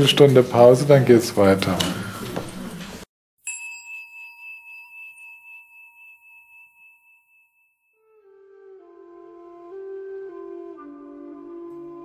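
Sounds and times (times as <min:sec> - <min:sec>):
bell ringing high tone: 0:03.4 - 0:08.3.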